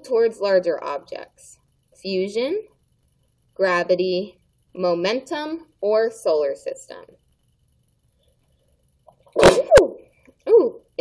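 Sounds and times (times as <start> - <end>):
woman sneezing: 9.4 - 10.0.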